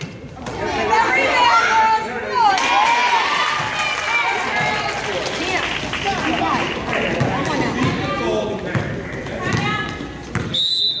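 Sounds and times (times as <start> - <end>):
basketball dribbling on gym floor: 8.7 - 10.6
referee's whistle: 10.5 - 11.0.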